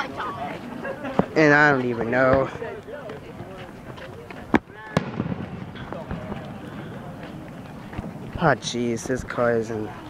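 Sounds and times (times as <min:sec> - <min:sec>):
crowd chatter: 0:00.0 - 0:10.0
firework bangs: 0:04.5 - 0:08.8.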